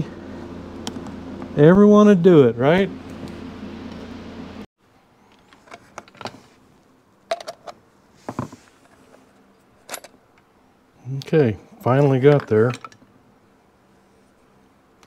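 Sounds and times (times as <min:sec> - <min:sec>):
steady background hum: 0:00.0 - 0:15.0.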